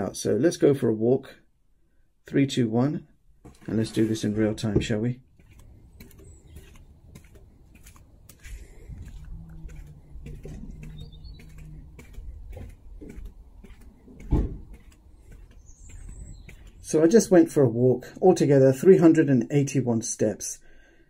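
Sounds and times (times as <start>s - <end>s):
footsteps on paving: 3.4s - 17.6s
loud thump: 14.2s - 14.8s.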